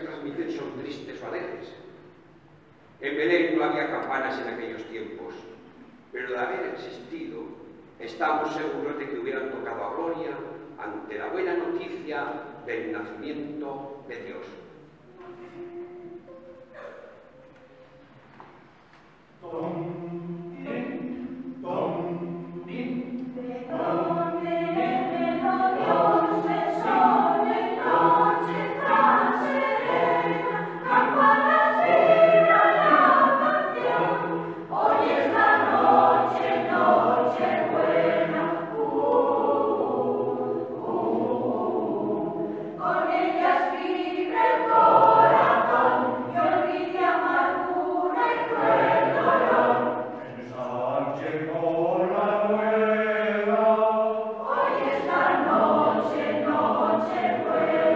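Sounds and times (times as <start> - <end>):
mixed choir singing a carol: 19.4 - 57.9.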